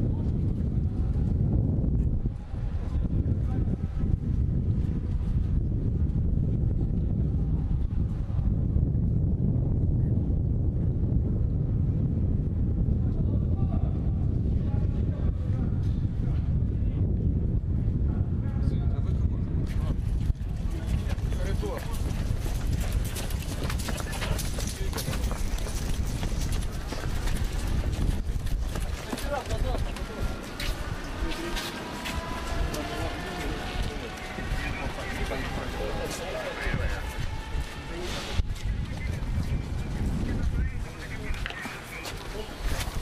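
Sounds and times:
low rumble: 0.0s - 41.5s
people's voices: 18.1s - 43.0s.

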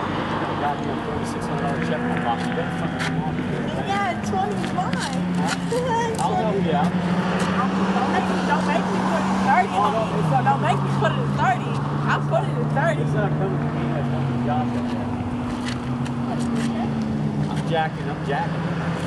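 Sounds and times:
race car engines: 0.0s - 19.0s
people chatting: 0.6s - 15.1s, 16.3s - 18.5s.

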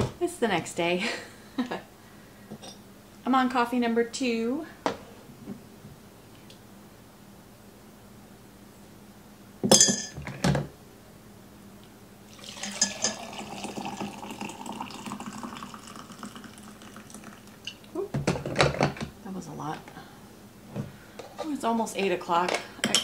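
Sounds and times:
coffee pouring into a mug: 12.3s - 17.8s.

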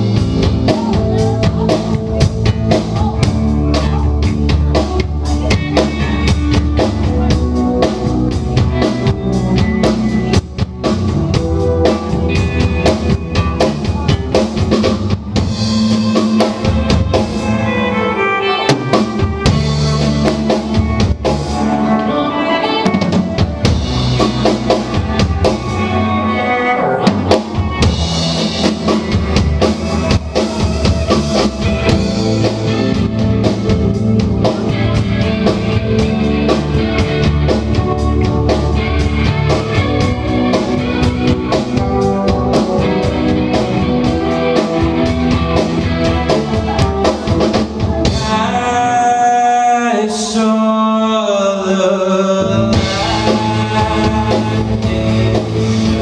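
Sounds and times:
electric keyboard: 0.0s - 49.2s
drum kit: 0.0s - 50.4s, 52.3s - 56.0s
electric bass: 0.0s - 50.6s, 51.8s - 56.0s
electric guitar: 0.0s - 56.0s.

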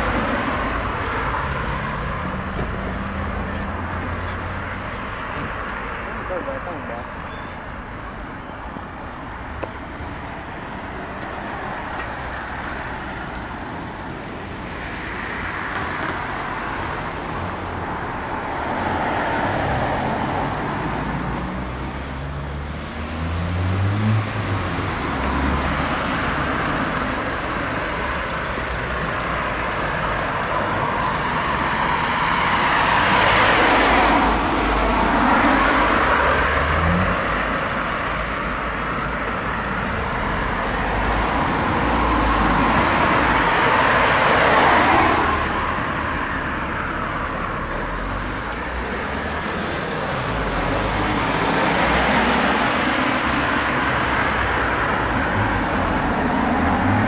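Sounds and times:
cars driving past: 0.0s - 57.0s.

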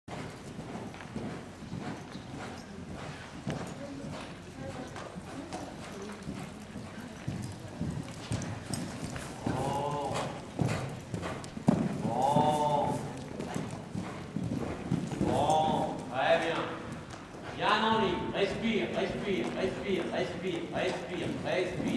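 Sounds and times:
horse hoofbeats on sand: 0.1s - 21.9s.

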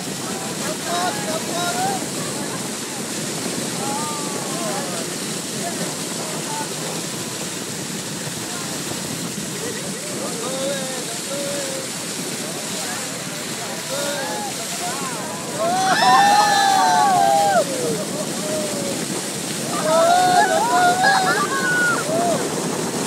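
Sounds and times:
water rushing along boat hull: 0.0s - 23.0s.

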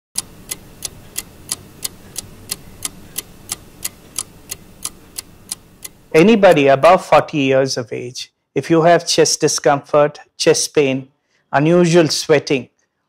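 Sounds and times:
clock ticking: 0.2s - 6.8s
faint low hum: 0.2s - 8.1s.

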